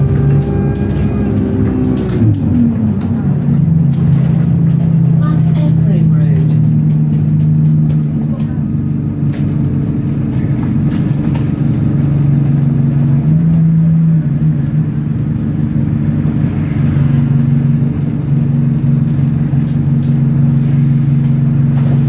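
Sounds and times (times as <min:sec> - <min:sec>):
bus engine drone: 0:00.0 - 0:22.0
road noise: 0:00.0 - 0:22.0.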